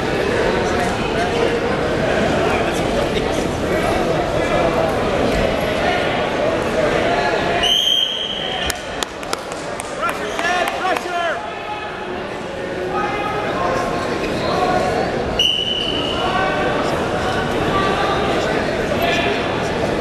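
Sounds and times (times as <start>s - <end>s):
voices shouting and chattering: 0.0s - 20.0s
referee whistle blasts: 7.6s - 8.6s, 15.4s - 16.2s.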